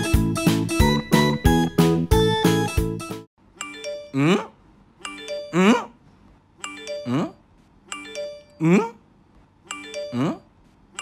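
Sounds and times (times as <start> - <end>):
questioning hmm voice: 4.0 - 4.6, 5.4 - 6.0, 6.9 - 7.5, 8.5 - 9.1, 10.0 - 10.5.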